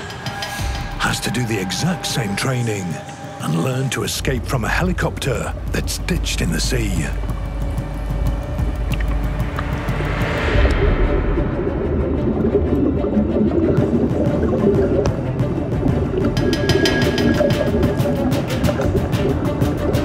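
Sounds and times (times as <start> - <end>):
background music: 0.0 - 20.0
water rushing and splashing: 0.0 - 20.0.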